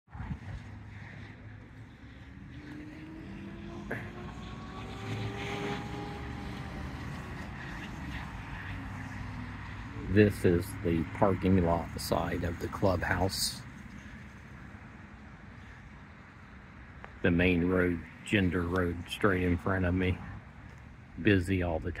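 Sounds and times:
busy road traffic: 0.0s - 22.0s
wind on microphone: 0.1s - 1.6s
faint vehicle hum: 0.1s - 22.0s.

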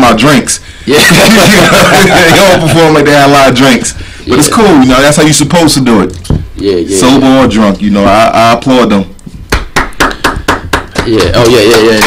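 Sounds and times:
sharp hand claps: 9.5s - 12.0s.

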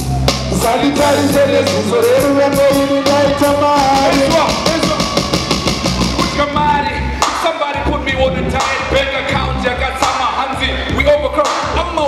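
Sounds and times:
driving drum beat: 0.0s - 12.0s
man rapping over a beat: 0.5s - 5.2s, 6.2s - 12.0s.

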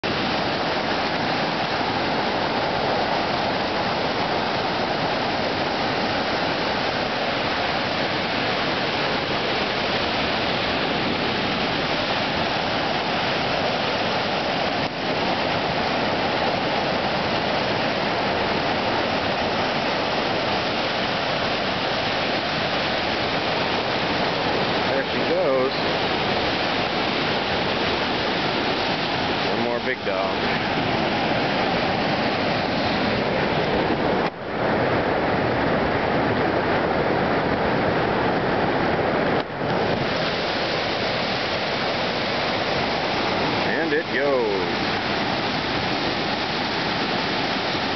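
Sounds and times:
rushing whitewater: 0.0s - 47.9s.

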